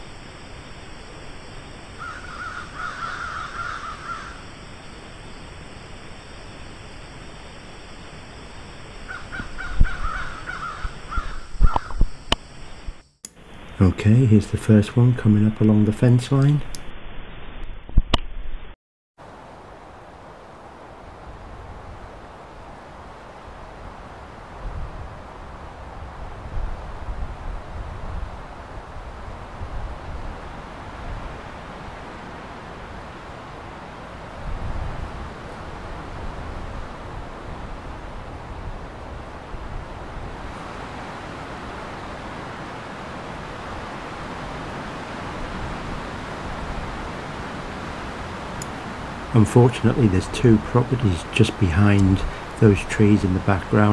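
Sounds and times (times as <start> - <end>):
steady outdoor hiss: 0.0 - 17.6, 19.2 - 53.9
wind rumbling on microphone: 0.0 - 18.6, 19.3 - 53.9.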